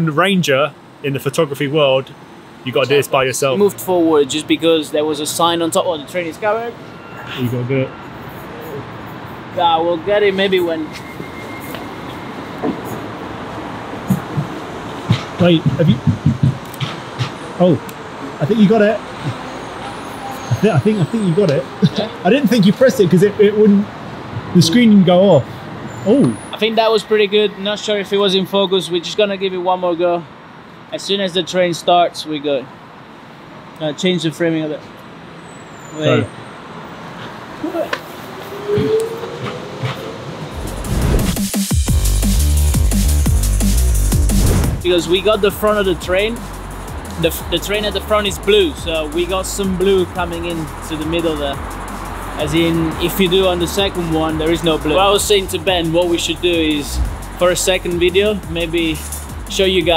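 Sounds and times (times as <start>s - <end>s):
train rumbling: 12.1s - 17.3s, 38.2s - 41.4s
drum and bass music: 14.1s - 16.9s, 40.6s - 59.9s.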